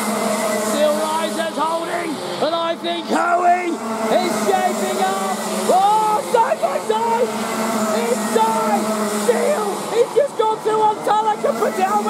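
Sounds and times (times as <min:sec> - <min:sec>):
kart engines racing: 0:00.0 - 0:12.0.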